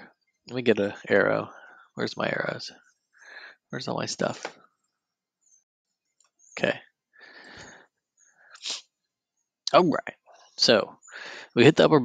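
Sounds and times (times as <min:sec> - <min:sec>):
man sneezing: 0:08.6 - 0:08.8.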